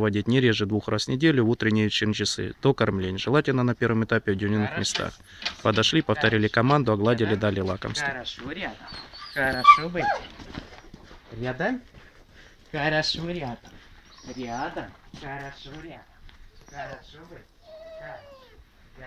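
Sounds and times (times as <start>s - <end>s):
man's voice: 0.0s - 10.2s
dogs whining and barking: 8.7s - 10.5s, 16.5s - 18.9s.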